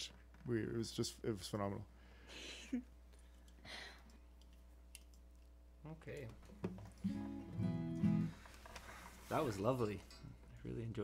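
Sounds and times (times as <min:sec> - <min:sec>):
acoustic guitar strummed: 0:07.0 - 0:08.4.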